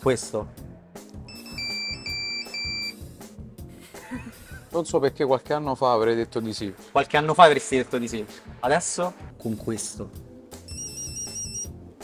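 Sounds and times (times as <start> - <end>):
background music: 0.0 - 12.0
mobile phone ringtone beeps: 1.3 - 3.0, 10.7 - 11.7.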